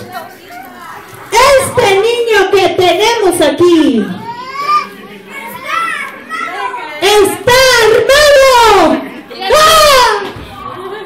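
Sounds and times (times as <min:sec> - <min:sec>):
children chattering: 0:00.0 - 0:11.0
amplified speech: 0:01.3 - 0:10.4.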